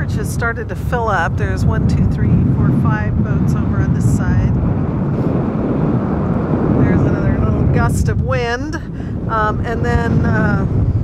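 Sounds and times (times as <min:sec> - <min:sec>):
wind gusting over microphone: 0:00.0 - 0:11.0.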